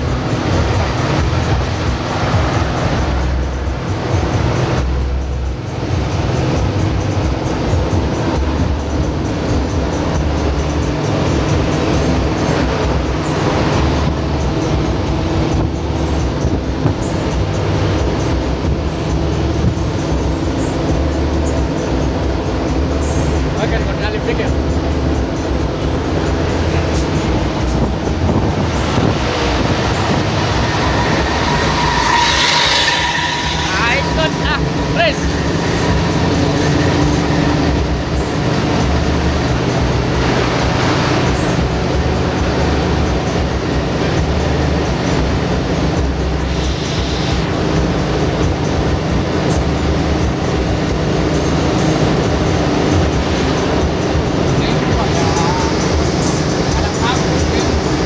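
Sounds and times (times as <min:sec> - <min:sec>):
bus engine and road drone: 0:00.0 - 0:58.0.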